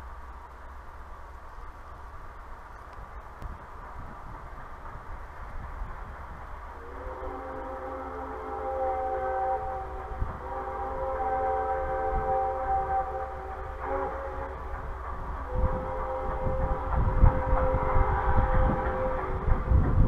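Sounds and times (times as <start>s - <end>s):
train rumble: 0.0s - 20.0s
wind: 0.0s - 20.0s
distant steam whistle blasts: 6.8s - 19.9s.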